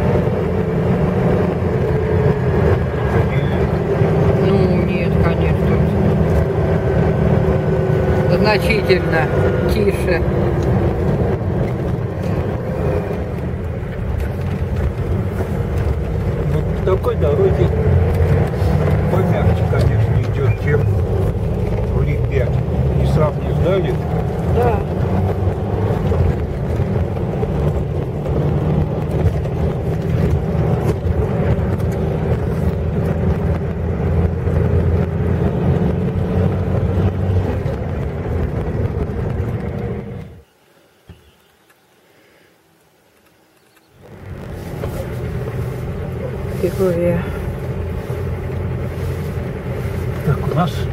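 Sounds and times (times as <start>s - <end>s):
car engine and road drone: 0.0s - 50.9s.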